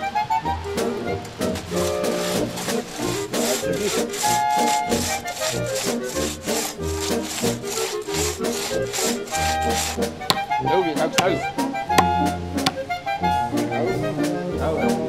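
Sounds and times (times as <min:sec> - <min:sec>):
background music: 0:00.0 - 0:15.0
crosscut saw sawing wood: 0:01.5 - 0:12.9
sharp knocks: 0:09.8 - 0:10.6, 0:11.2 - 0:12.8.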